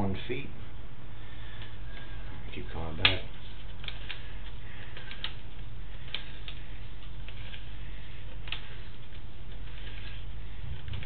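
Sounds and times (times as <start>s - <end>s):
cable low hum: 0.0s - 11.0s.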